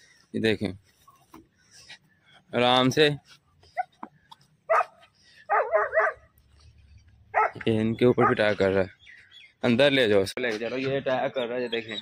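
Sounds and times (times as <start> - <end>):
dog barking: 4.7 - 6.3, 7.3 - 7.6, 8.2 - 8.4.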